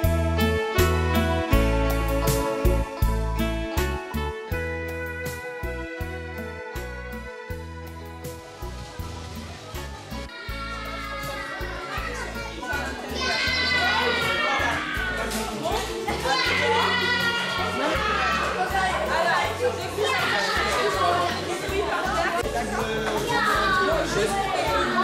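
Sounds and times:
music playing: 0.0 - 25.0
children playing and calling out: 8.4 - 25.0.

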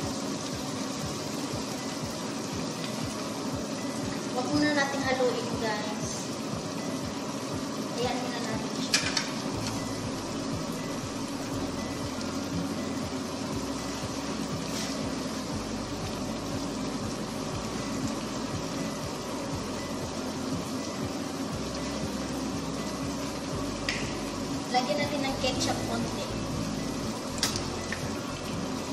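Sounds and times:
sauce bubbling in frying pan: 0.0 - 28.9.

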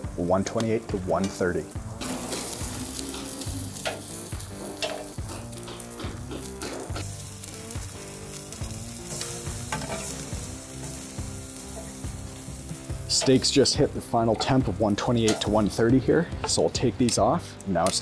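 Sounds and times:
steaks sizzling on a grill: 0.0 - 18.0.

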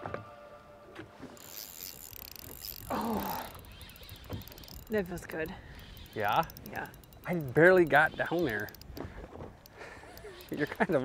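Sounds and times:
faint wind: 0.0 - 11.0
water noise: 1.4 - 11.0.

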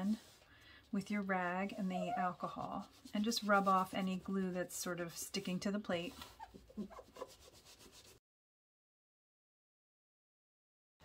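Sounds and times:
cloth rubbing on glass: 1.0 - 8.2.

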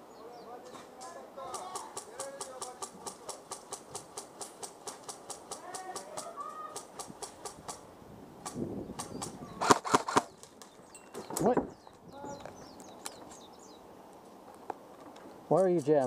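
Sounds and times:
distant voices calling: 0.0 - 16.0
airsoft guns firing rapidly: 1.4 - 7.8, 8.4 - 10.3
loud sharp gunshots: 8.4 - 10.3.

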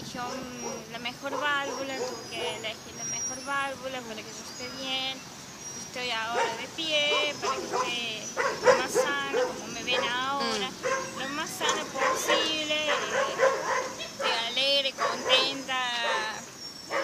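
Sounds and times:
woman talking: 0.0 - 16.5.

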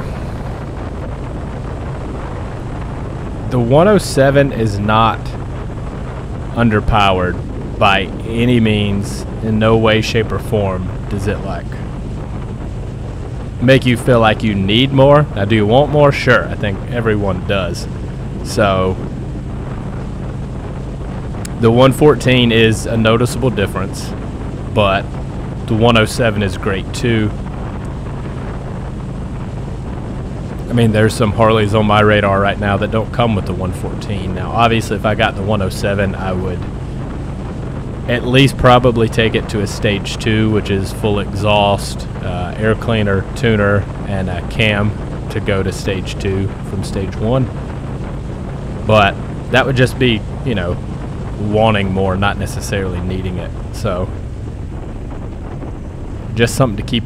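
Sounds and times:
motorcycle engine cruising: 0.0 - 57.0
wind and road noise: 0.0 - 57.0.

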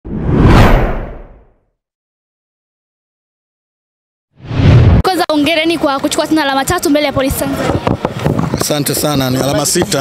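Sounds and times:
whoosh sound effect: 0.1 - 1.5, 4.4 - 5.0.

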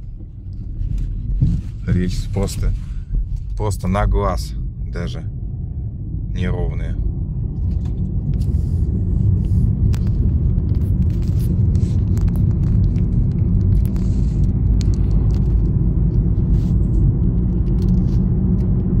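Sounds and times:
light knocks and rattles: 0.0 - 3.6
car road rumble: 0.0 - 19.0.

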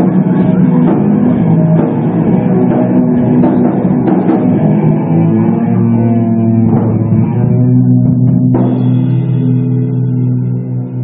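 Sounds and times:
drumming: 0.0 - 9.6
distorted electric guitar and bass: 0.0 - 11.0.

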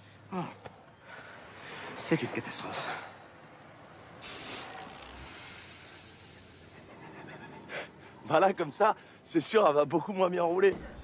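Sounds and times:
hiss of escaping air: 4.0 - 7.0.

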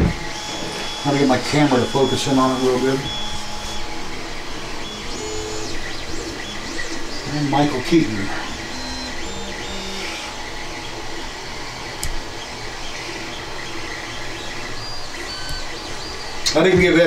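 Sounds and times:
room hum and hiss: 0.0 - 17.0
sharp click: 12.0 - 12.2.

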